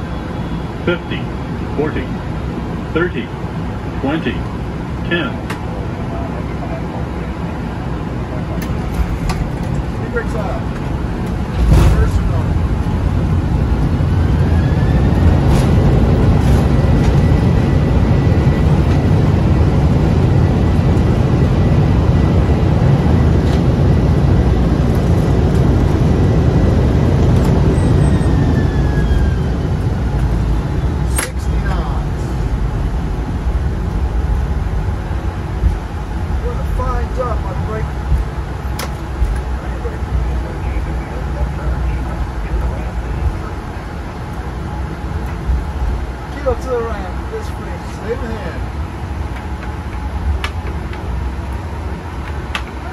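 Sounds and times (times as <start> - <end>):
jet engines in reverse thrust: 0.0 - 52.9
wheels rumbling on runway: 0.0 - 52.9
thump: 11.6 - 12.2
sharp click: 31.1 - 31.4.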